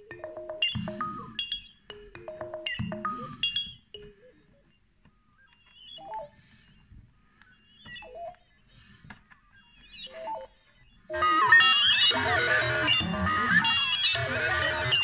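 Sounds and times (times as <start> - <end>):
synthesizer blips and chirping tones: 0.0 - 8.7, 9.4 - 15.0.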